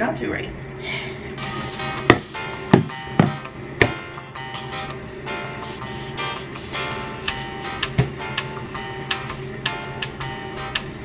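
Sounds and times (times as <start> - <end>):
background music: 1.4 - 11.0.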